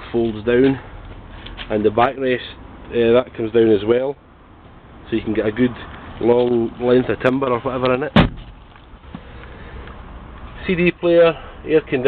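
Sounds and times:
seat backrest clunk: 0:08.2 - 0:09.2.

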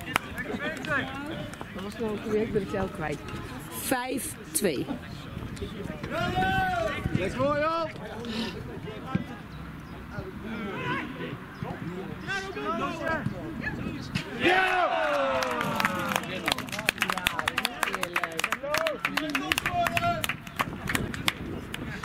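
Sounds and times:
men shouting outdoors: 0:06.1 - 0:08.2, 0:10.1 - 0:13.7, 0:14.3 - 0:16.8, 0:18.5 - 0:20.3
long falling shout: 0:14.4 - 0:16.2.

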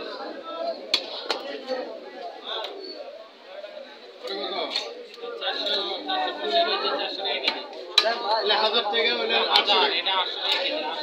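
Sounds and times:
overlapping chatter of voices: 0:00.0 - 0:11.0.

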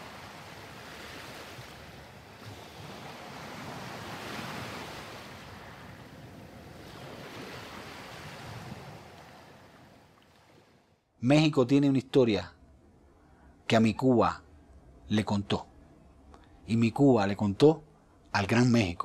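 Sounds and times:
sea waves: 0:00.0 - 0:19.0
wind: 0:00.0 - 0:19.0.

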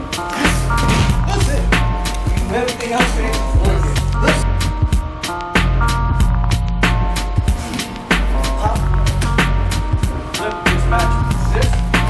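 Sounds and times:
repeated drum hits: 0:00.4 - 0:12.0.

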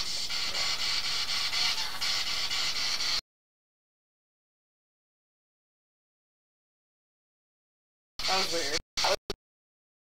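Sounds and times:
pulsing static hiss: 0:00.0 - 0:03.2, 0:08.2 - 0:09.2.

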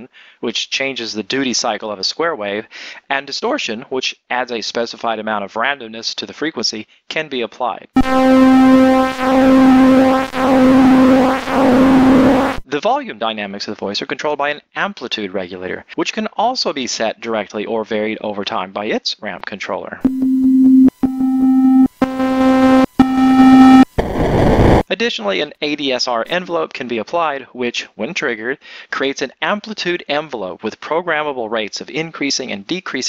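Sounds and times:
synthesizer square-wave tone: 0:08.0 - 0:12.6, 0:20.0 - 0:24.8.

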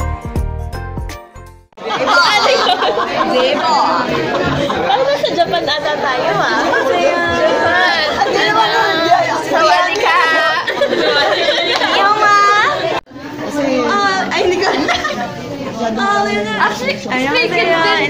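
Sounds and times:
young women chattering: 0:01.8 - 0:18.0.

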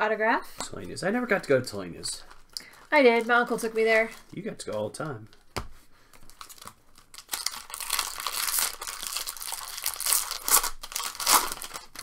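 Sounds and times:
plastic wrapper crinkling and tearing: 0:00.9 - 0:05.5, 0:06.1 - 0:12.0.

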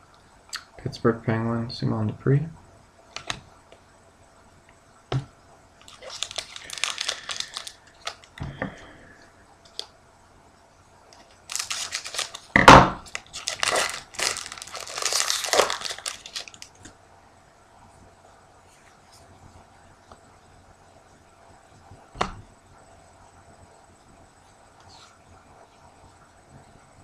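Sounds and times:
foil wrapper crinkling and tearing: 0:05.8 - 0:08.4, 0:11.2 - 0:16.9
scissors cutting foil wrapper: 0:05.9 - 0:08.3, 0:11.5 - 0:16.7.

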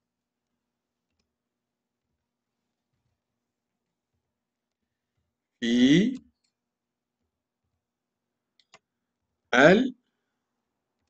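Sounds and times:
man speaking: 0:05.6 - 0:06.2, 0:09.6 - 0:10.0.

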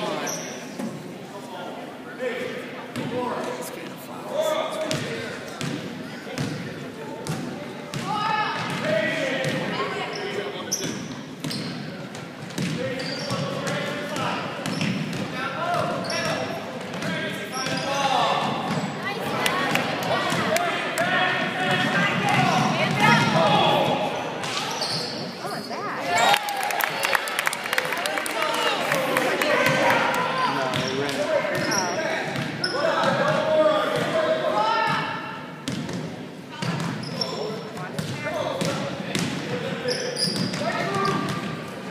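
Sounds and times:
people shouting and chattering: 0:00.0 - 0:41.9.

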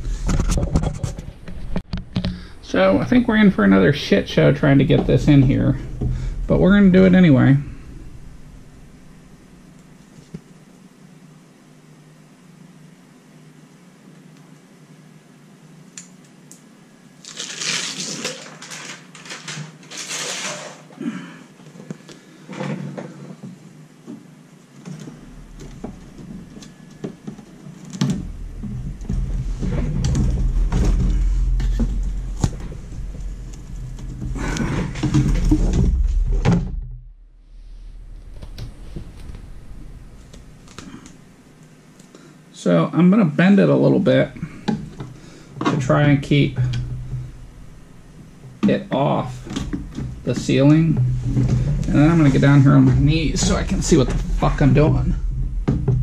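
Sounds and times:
heavy low rumble: 0:00.0 - 0:11.0, 0:25.0 - 0:41.7, 0:44.1 - 0:48.6, 0:49.2 - 0:56.0
insulation sheet crinkling: 0:17.2 - 0:21.0.

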